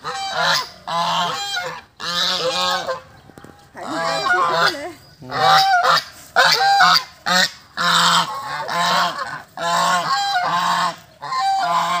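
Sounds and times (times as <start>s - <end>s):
geese honking: 0.0s - 12.0s.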